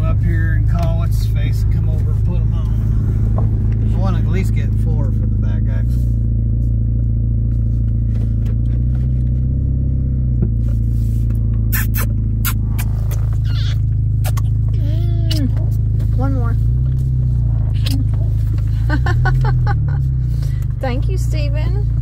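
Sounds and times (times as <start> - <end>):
car interior engine and road drone: 0.0 - 22.0.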